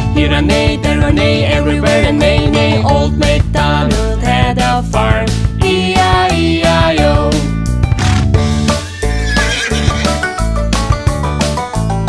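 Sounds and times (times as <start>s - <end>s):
cheerful children's song music: 0.0s - 7.8s
horse whinny: 8.8s - 10.6s.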